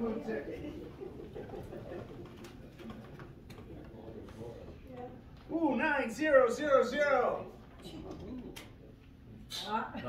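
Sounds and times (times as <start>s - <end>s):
faint room murmur: 0.0s - 10.0s
soft clicks and rustles: 1.2s - 5.5s.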